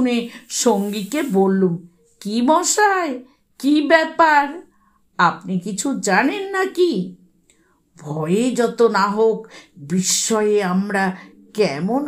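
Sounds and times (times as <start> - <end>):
narrator speaking: 0.0 - 4.6.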